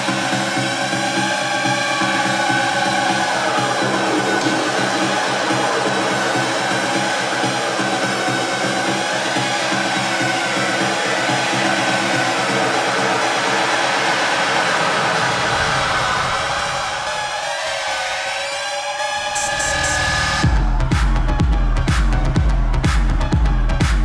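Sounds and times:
deep bass: 0:00.0 - 0:16.9, 0:19.2 - 0:24.0
electronic techno music: 0:00.0 - 0:24.0.

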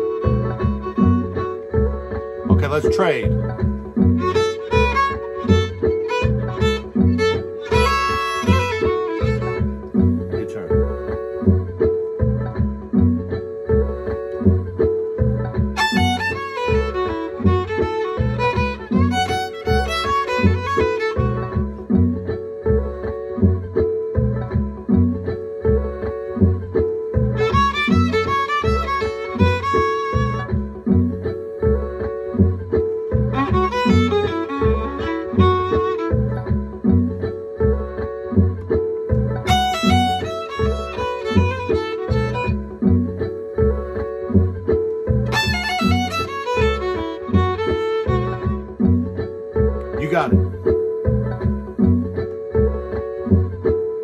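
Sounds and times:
violin playing blues phrases: 0:00.0 - 0:10.7, 0:15.8 - 0:22.1, 0:27.4 - 0:31.0, 0:33.1 - 0:37.0, 0:39.4 - 0:43.2, 0:45.2 - 0:49.0
backing groove with steady beat: 0:00.0 - 0:54.0.

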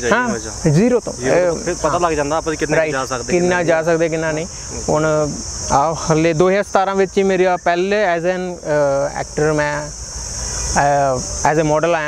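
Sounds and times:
man talking: 0:00.0 - 0:10.0, 0:10.7 - 0:12.0
insects chirring: 0:00.0 - 0:12.0.

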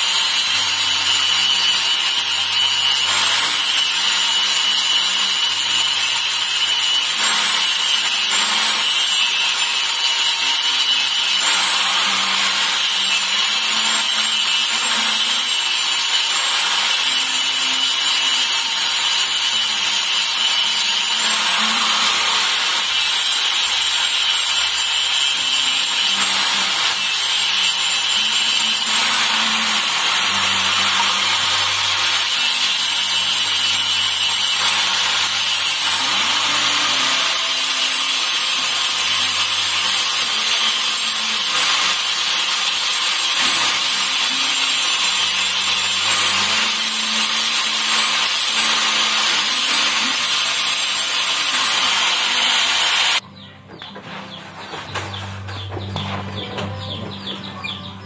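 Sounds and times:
angle grinder grinding metal: 0:00.0 - 0:58.0.

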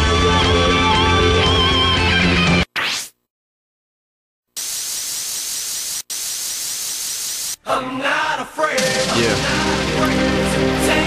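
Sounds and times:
hissing static-like sound effect: 0:04.6 - 0:07.6.

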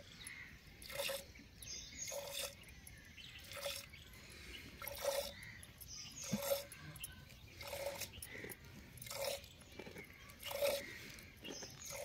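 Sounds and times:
milk squirting into steel bowl: 0:00.8 - 0:01.3, 0:02.0 - 0:02.7, 0:04.8 - 0:05.5, 0:06.2 - 0:06.8, 0:07.6 - 0:09.6, 0:10.4 - 0:11.1.

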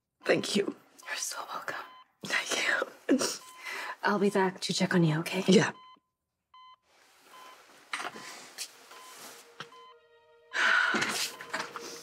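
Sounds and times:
patient monitor beeping: 0:00.2 - 0:12.0.

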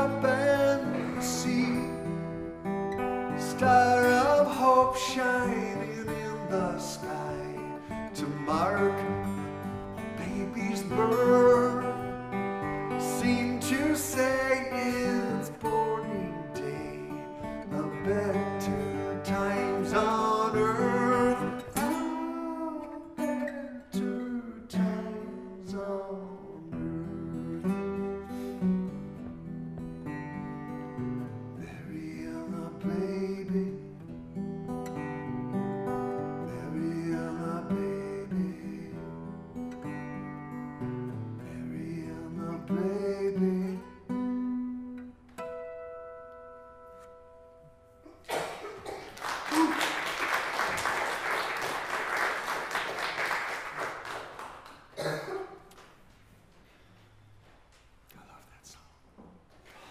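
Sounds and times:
acoustic guitar: 0:00.0 - 0:59.9
audience applause: 0:48.2 - 0:55.0.

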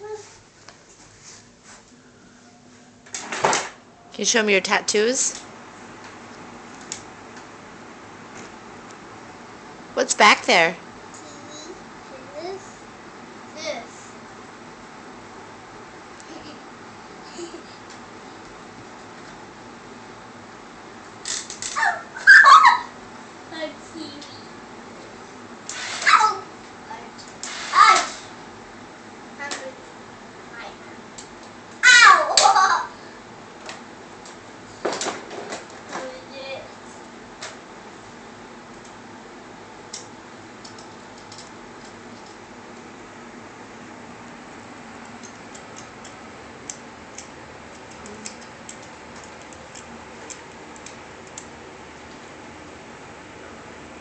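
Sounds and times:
toddler squealing: 0:21.8 - 0:22.9.

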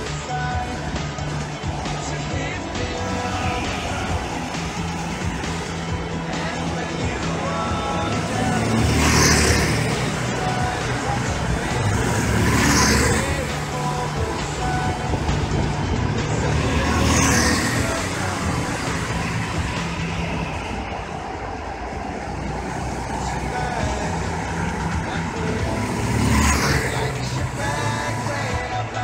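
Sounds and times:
go-kart engines buzzing: 0:00.0 - 0:29.0
go-kart passing by: 0:00.0 - 0:29.0.

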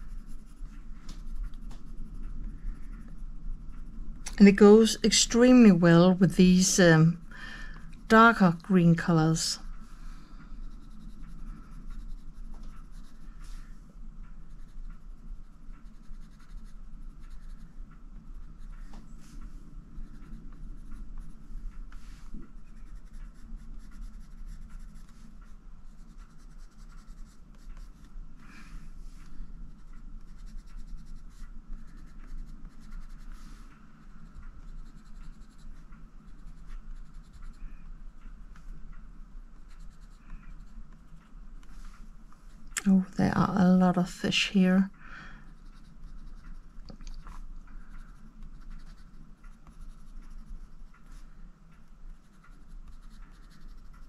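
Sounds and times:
coloured pencil scratching paper: 0:00.0 - 0:04.0, 0:10.6 - 0:13.7, 0:14.5 - 0:17.8, 0:20.0 - 0:21.4, 0:22.6 - 0:28.1, 0:29.7 - 0:33.6, 0:34.2 - 0:37.6, 0:39.6 - 0:40.8, 0:45.5 - 0:47.3, 0:47.9 - 0:51.2, 0:52.1 - 0:54.0.

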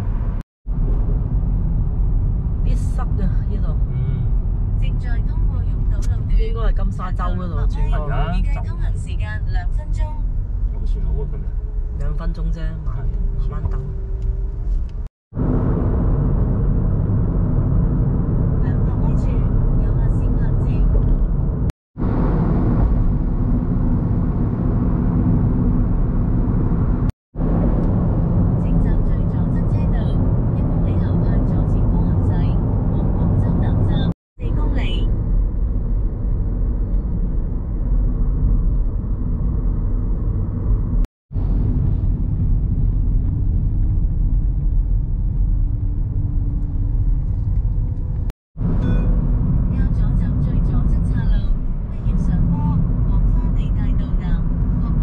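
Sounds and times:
car cabin road rumble: 0:00.0 - 0:55.0.

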